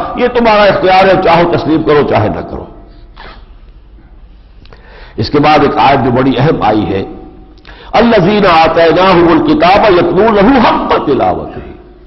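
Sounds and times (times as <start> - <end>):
faint room hum: 0.0 - 12.0
breathy sniff: 3.0 - 5.2.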